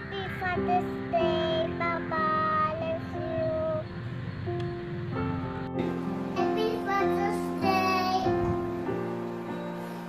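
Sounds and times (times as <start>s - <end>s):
girl singing: 0.0s - 4.0s, 6.4s - 9.0s
instrumental backing music: 0.0s - 10.0s.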